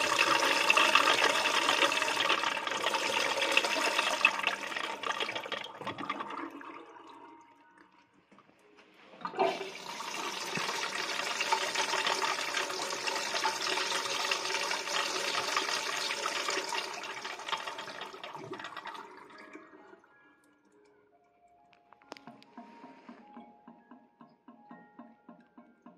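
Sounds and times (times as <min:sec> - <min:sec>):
urinal flushing: 0:00.0 - 0:08.3, 0:09.1 - 0:20.0.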